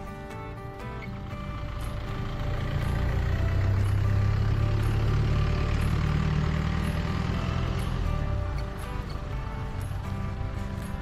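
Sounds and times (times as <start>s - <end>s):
faint background music: 0.0s - 11.0s
vehicle engine rumble: 0.0s - 11.0s.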